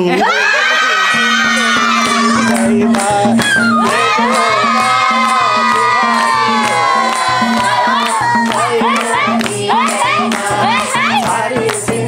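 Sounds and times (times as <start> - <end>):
people cheering: 0.0 - 11.4
group clapping: 0.2 - 12.0
hand drum folk rhythm: 1.2 - 12.0.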